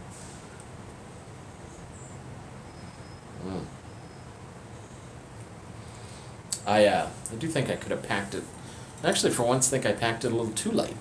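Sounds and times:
faint high-pitched chirps: 0:01.6 - 0:05.1
man murmuring approval: 0:03.4 - 0:03.7.

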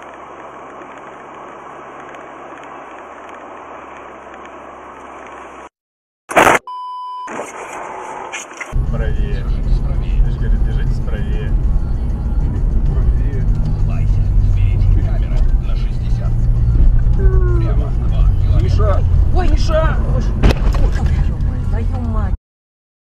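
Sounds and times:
car engine and tyres rumbling: 0:00.0 - 0:05.7, 0:07.3 - 0:22.4.

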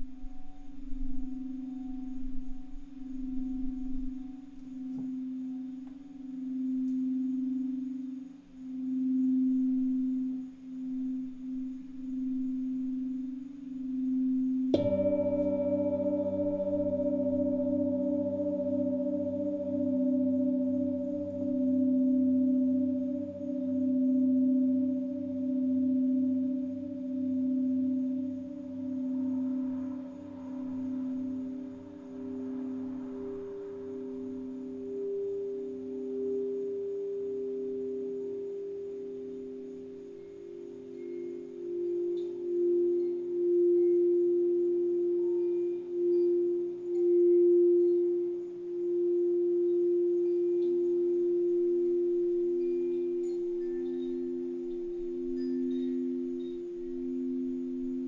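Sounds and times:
faint high chime tinkles: 0:00.0 - 0:58.0
higher bowl tone: 0:00.0 - 0:58.0
singing bowls ringing: 0:00.0 - 0:58.0.

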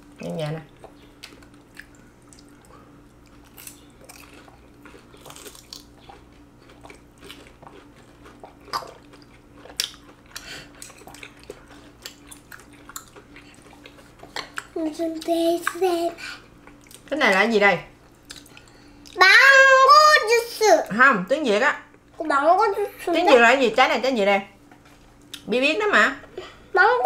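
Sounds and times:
faint steady hum: 0:00.0 - 0:27.0
chewing: 0:00.6 - 0:14.8, 0:18.0 - 0:19.2.

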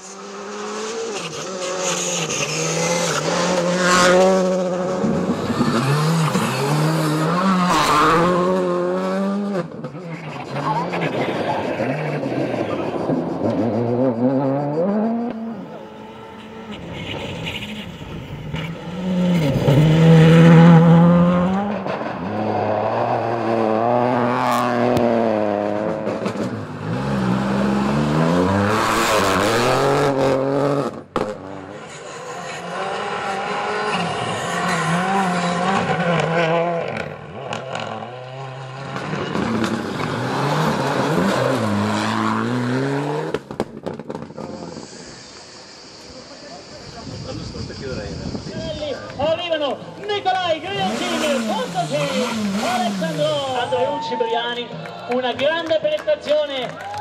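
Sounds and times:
rally car engines revving: 0:00.0 - 0:56.3.

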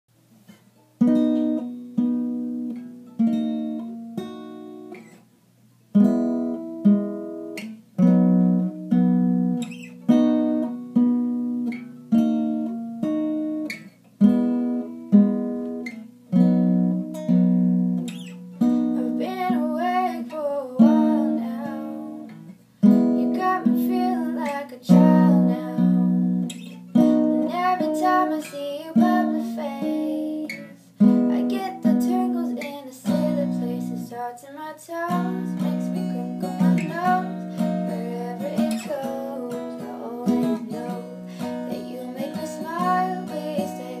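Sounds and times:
acoustic guitar chords: 0:00.4 - 0:05.3, 0:05.9 - 0:44.0.

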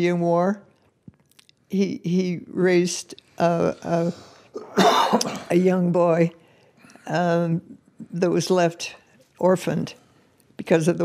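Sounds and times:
woman clearing throat: 0:04.6 - 0:05.5.

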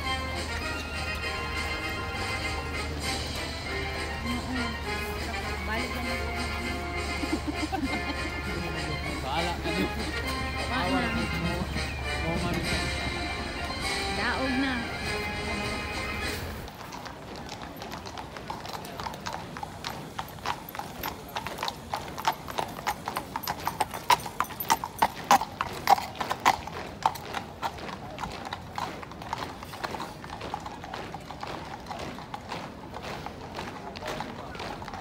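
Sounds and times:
horse hooves on road: 0:00.0 - 0:35.0.

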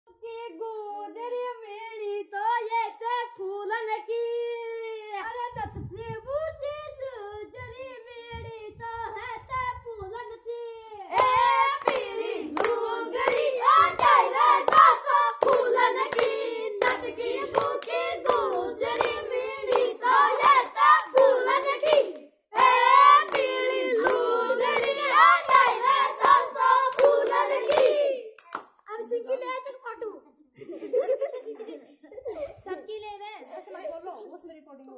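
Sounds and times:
child singing folk song: 0:00.1 - 0:28.2
rhythmic hand clapping: 0:11.1 - 0:28.8.

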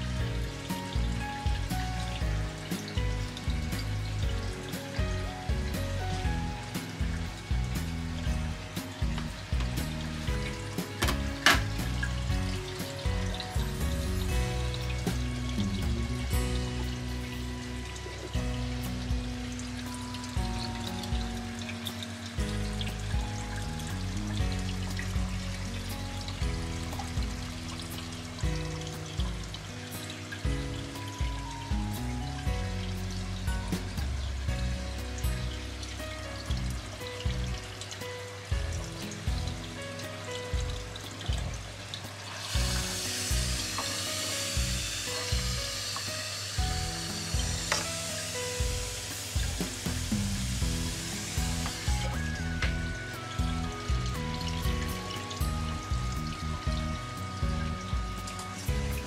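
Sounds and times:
music with steady beat: 0:00.0 - 0:59.0
water splashing from pipe: 0:00.0 - 0:59.0.

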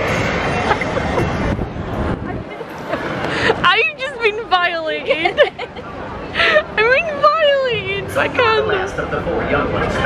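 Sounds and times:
low rumbling noise: 0:00.0 - 0:10.0.

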